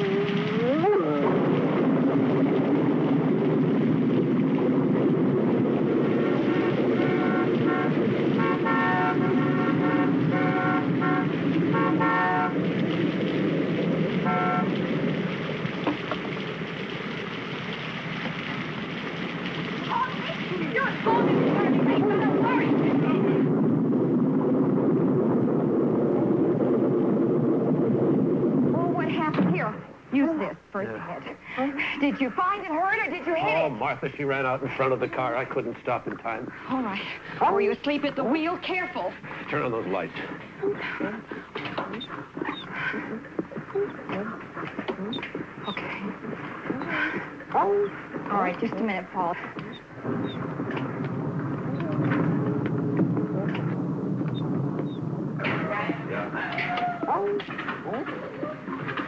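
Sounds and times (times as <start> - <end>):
steady rushing noise: 0.0 - 59.0
car horn honking: 6.4 - 12.6, 14.2 - 14.8.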